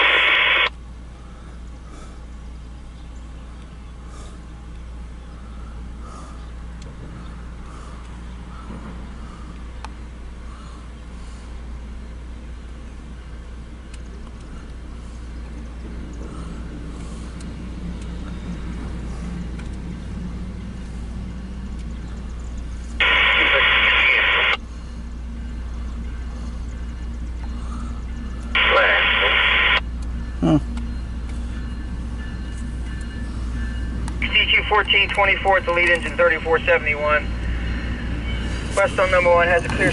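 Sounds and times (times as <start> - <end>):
scanner radio bursts: 0.0 - 0.7, 23.0 - 24.6, 28.5 - 29.8, 34.2 - 39.9
steady low rumble: 0.0 - 39.9.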